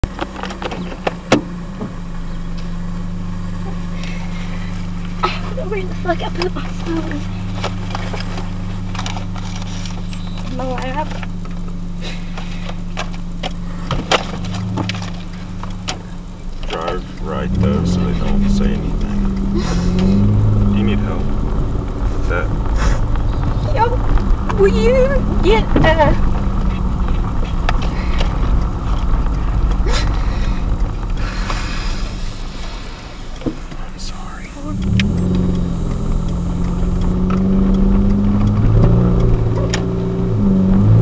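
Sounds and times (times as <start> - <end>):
car idling low hum: 0.0 - 41.0
hiss: 31.2 - 33.4.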